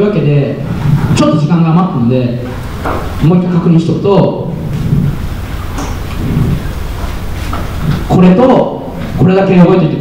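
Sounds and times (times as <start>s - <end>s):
rumbling hiss of room noise: 0.0s - 10.0s.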